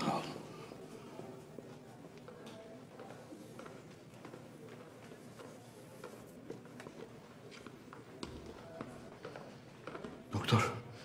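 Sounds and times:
faint footsteps: 0.8 - 10.3.

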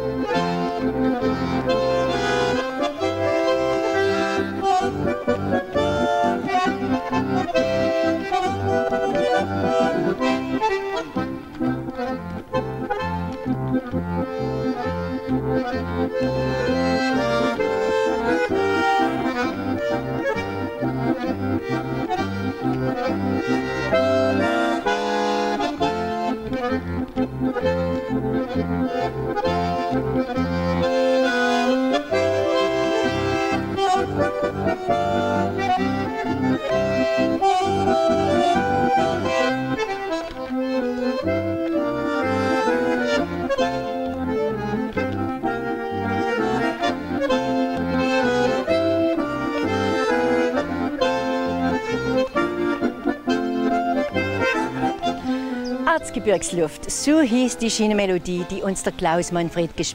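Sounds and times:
button accordion playing folk tune: 0.0 - 59.9.

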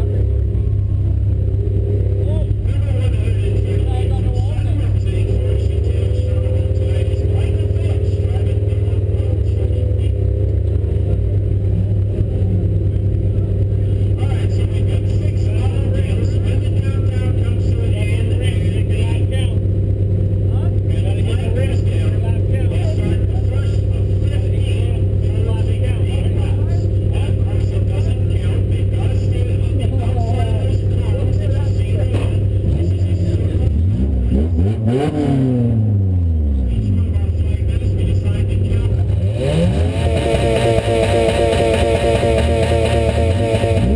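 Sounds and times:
car engine idling and revving: 0.0 - 43.9.

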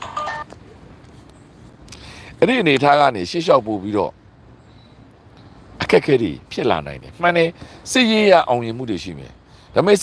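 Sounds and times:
electronic phone tone: 0.0 - 0.5
low background noise: 0.0 - 10.0.

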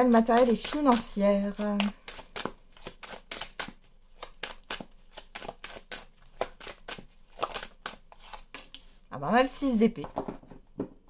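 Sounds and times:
cards being shuffled: 0.1 - 9.0.

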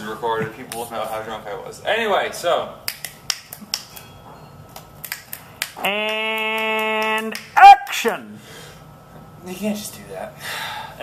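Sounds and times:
finger snaps: 2.9 - 4.1, 4.7 - 7.5.

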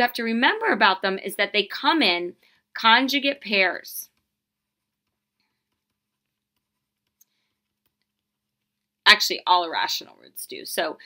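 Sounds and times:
stylus tapping on a screen: 4.1 - 8.9.

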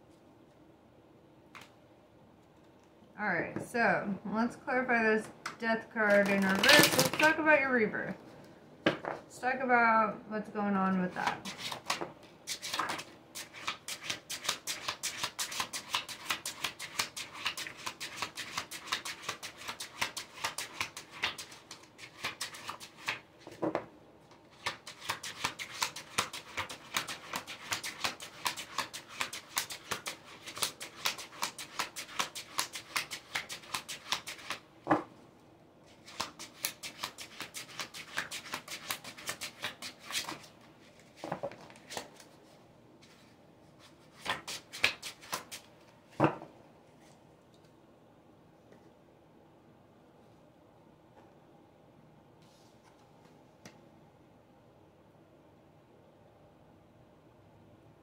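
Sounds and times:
cards being shuffled by hand: 6.0 - 7.4, 11.2 - 23.6, 24.3 - 34.6, 35.9 - 46.0.

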